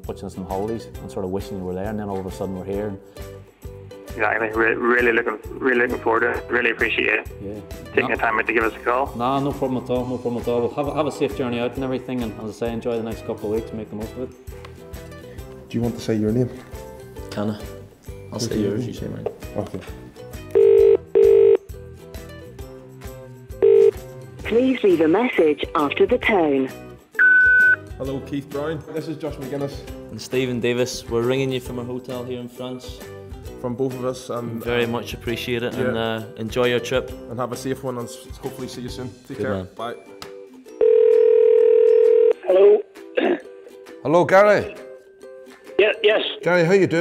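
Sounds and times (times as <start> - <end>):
telephone double ring tone: 20.6 - 21.6, 23.6 - 24.0, 40.8 - 42.4.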